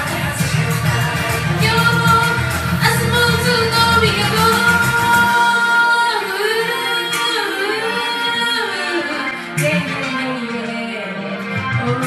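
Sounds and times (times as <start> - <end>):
sparse pop backing: 0.0 - 5.6.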